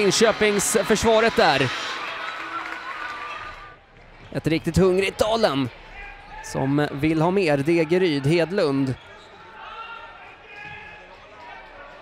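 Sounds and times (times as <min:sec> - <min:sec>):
distant voices in sports hall: 0:01.7 - 0:12.0.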